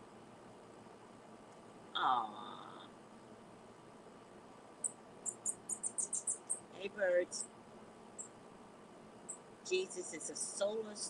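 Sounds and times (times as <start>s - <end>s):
small birds chirping: 4.8s - 7.5s.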